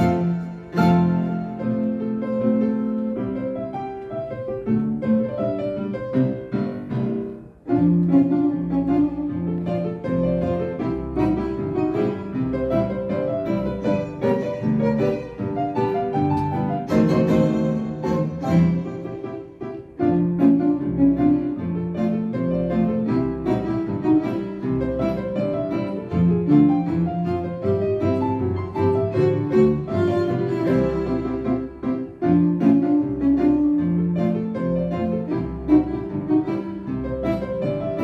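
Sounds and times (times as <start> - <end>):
violin: 0.0 - 3.6, 7.7 - 38.0
double bass: 0.0 - 3.7, 4.6 - 38.0
grand piano: 0.0 - 38.0.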